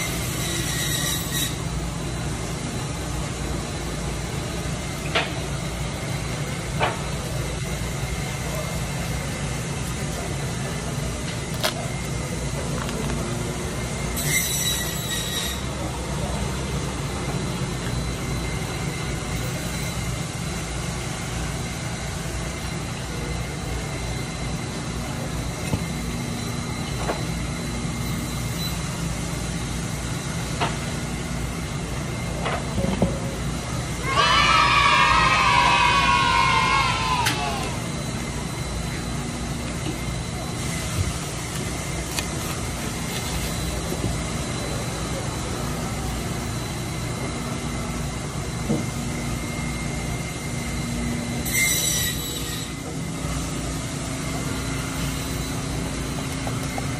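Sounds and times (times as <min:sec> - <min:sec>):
loud high squeal: 0:00.0 - 0:01.7, 0:14.1 - 0:15.9, 0:27.2 - 0:29.0, 0:34.0 - 0:39.0, 0:51.4 - 0:52.9
low mechanical hum: 0:00.0 - 0:56.9.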